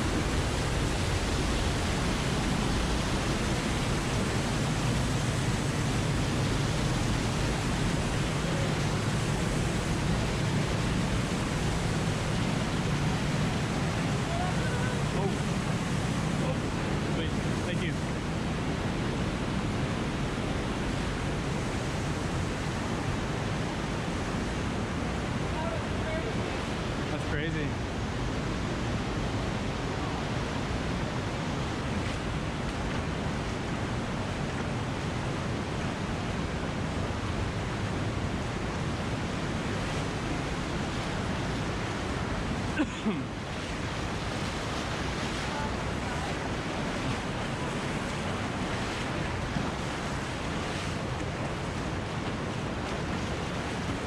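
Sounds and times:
river rushing through canyon: 0.0s - 54.0s.

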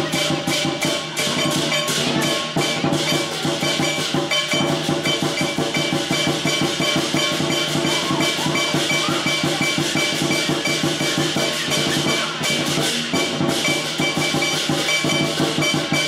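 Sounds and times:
cymbals ringing: 0.0s - 16.0s
fast drumming: 0.0s - 16.0s.

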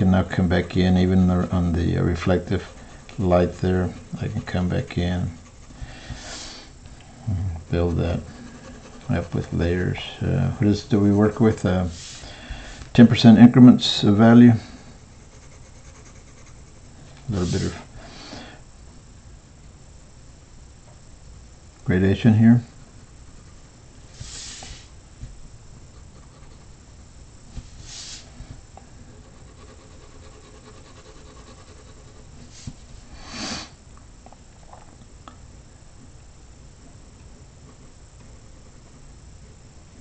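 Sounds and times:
pencil scratching on paper: 0.0s - 6.6s, 7.7s - 12.2s, 14.6s - 17.9s, 22.8s - 24.9s, 25.9s - 26.7s, 29.0s - 32.7s
breath-like rush of noise: 5.8s - 7.6s, 11.9s - 12.9s.

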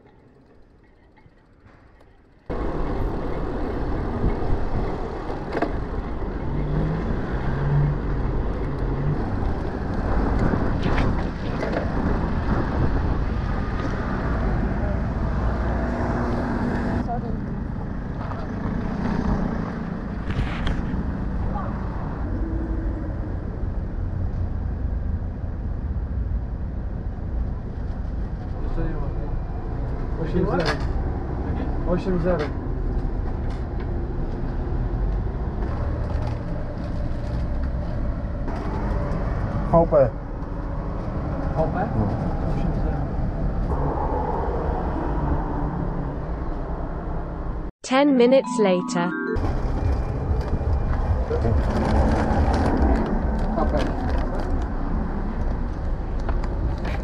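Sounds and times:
rumbling wind: 0.0s - 47.7s, 49.4s - 57.0s
street noise: 0.0s - 57.0s.

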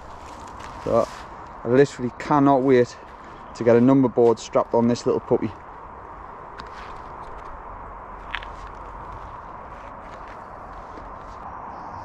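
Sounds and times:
footsteps on dirt path: 0.0s - 11.5s
outdoor background hiss: 0.0s - 12.0s.

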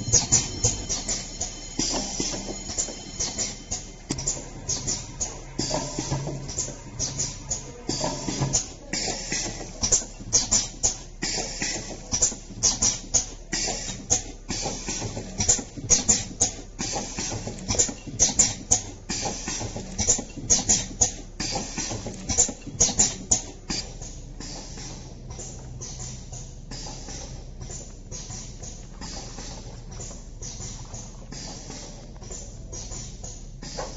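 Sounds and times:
low machine hum: 0.0s - 33.9s
packing machine clattering: 0.0s - 33.9s.

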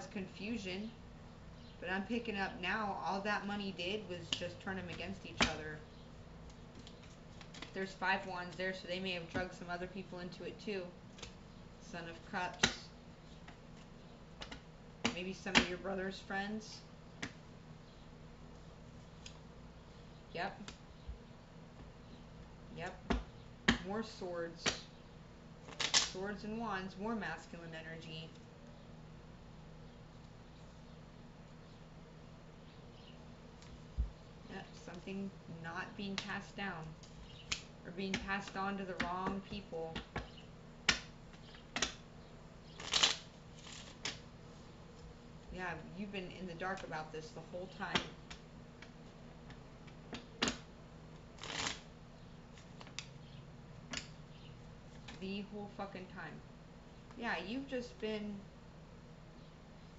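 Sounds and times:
woman's voice: 0.0s - 1.0s, 1.8s - 5.9s, 7.8s - 11.0s, 11.8s - 13.0s, 15.1s - 16.9s, 20.4s - 20.7s, 22.7s - 23.1s, 23.8s - 24.8s, 26.2s - 28.4s, 34.5s - 36.9s, 37.9s - 40.0s, 45.5s - 48.1s, 55.2s - 56.4s, 57.2s - 58.5s
cards rustling: 51.3s - 51.8s.

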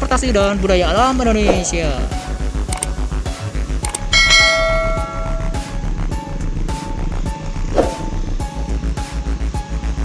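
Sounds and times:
background music with steady beat: 0.0s - 10.0s
bright bell chime: 4.1s - 5.8s.

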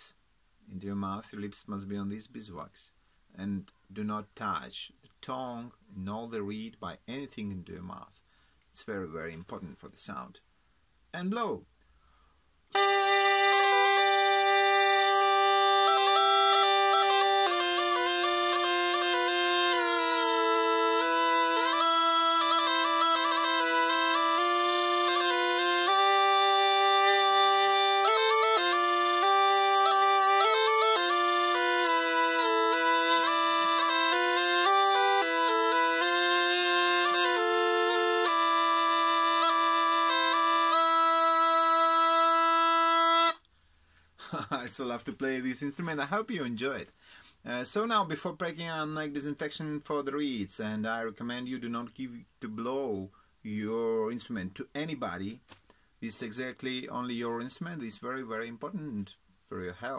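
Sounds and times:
double reed pipe melody: 12.7s - 43.5s.

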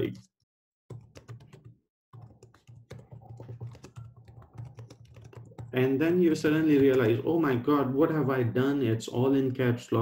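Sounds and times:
faint keyboard typing: 0.9s - 7.4s.

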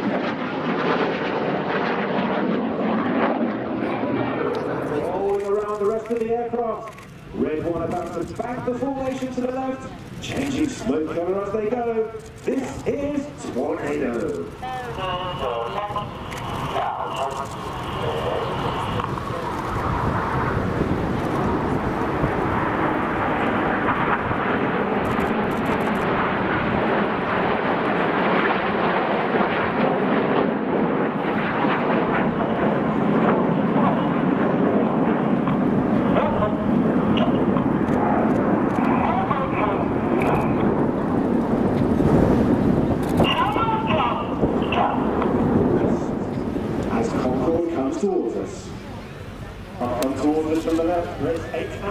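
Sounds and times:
jet engines roaring: 0.0s - 51.9s.

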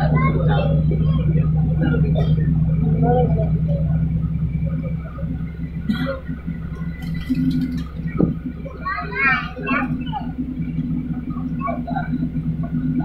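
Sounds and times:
faint voices: 0.0s - 13.0s
vehicle engine rumble: 0.0s - 13.0s.

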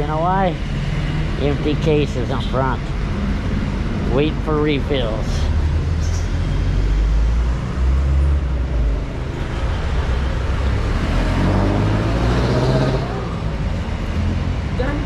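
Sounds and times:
engine speeding up: 0.0s - 15.0s
traffic rumble: 0.0s - 15.0s.

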